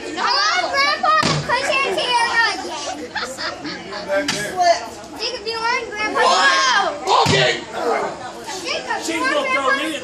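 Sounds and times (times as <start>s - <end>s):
children shouting: 5.6s - 8.2s.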